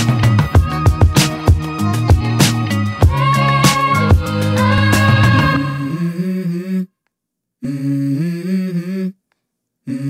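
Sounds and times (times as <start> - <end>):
person humming a melody: 3.2 - 6.9, 7.6 - 9.2.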